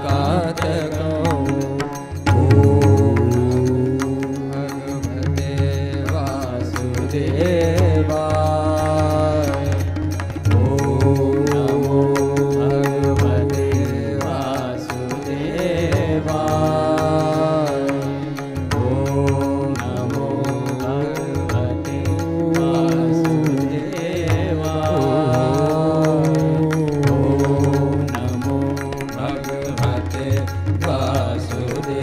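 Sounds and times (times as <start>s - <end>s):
man singing long notes: 0.0s - 32.0s
tabla strokes: 0.0s - 32.0s.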